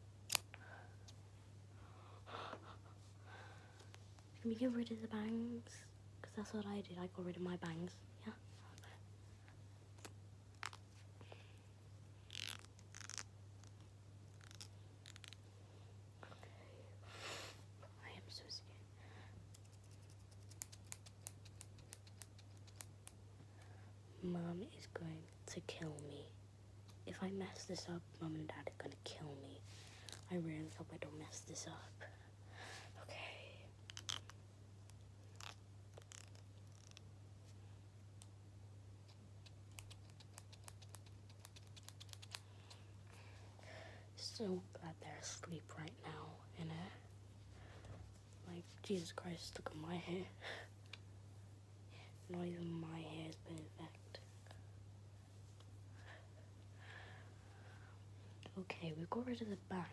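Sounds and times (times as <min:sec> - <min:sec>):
low steady hum: 0:00.0 - 0:59.9.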